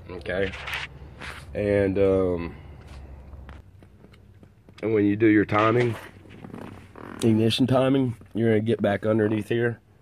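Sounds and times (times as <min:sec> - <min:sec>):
handling clicks and rustles: 0:02.7 - 0:08.9
man speaking: 0:07.2 - 0:09.8.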